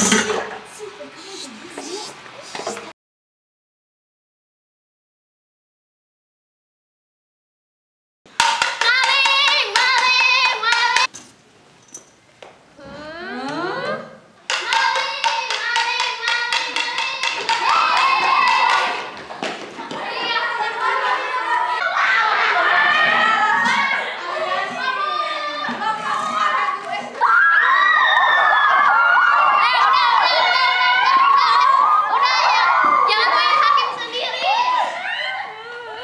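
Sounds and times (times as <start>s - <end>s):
rhythmic handclaps: 8.4s - 11.1s, 14.5s - 20.0s
girls singing together: 8.8s - 11.1s, 14.5s - 27.1s.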